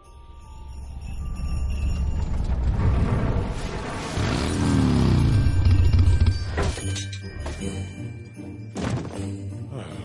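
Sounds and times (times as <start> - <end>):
faint chiming music: 0.0 - 2.8, 5.0 - 10.0.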